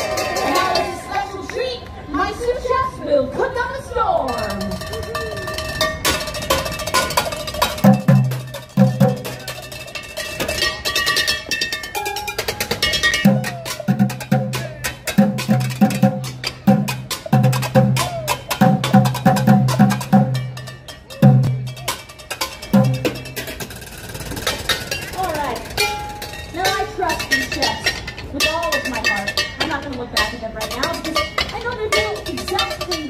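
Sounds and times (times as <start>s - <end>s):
pots and pans percussion music: 4.3s - 33.0s.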